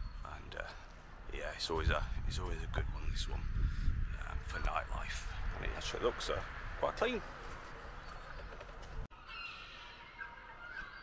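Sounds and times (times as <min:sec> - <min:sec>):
birds calling: 0:00.0 - 0:01.9, 0:03.0 - 0:11.0
thin wavering distant calls: 0:06.0 - 0:11.0.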